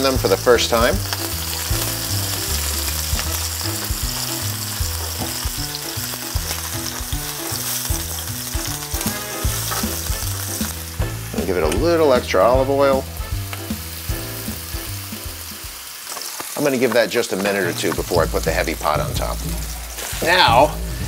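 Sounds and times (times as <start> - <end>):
mushrooms sizzling in a pan: 0.0 - 21.0
spatula turning food: 1.0 - 11.9, 14.4 - 20.4.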